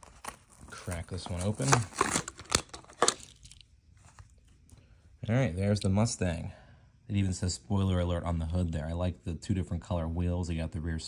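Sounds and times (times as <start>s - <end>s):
blister pack crunching open: 0.0s - 4.3s
packaging crinkling: 0.0s - 4.6s.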